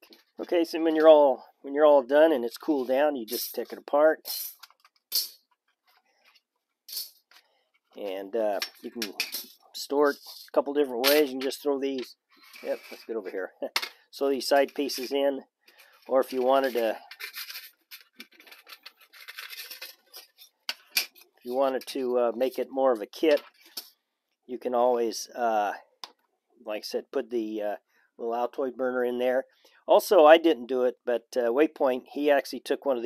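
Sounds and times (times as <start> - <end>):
light metal scrapes: 12.3 - 13.3
metal plates scraping and clicking: 16.3 - 21.9.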